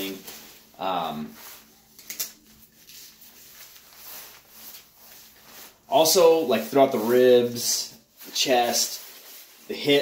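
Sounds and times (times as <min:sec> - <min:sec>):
nylon jacket rustling: 0:00.0 - 0:10.0.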